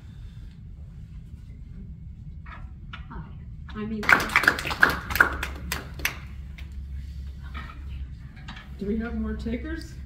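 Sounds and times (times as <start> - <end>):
low room hum: 0.0 - 10.0
audience clapping: 4.0 - 6.3.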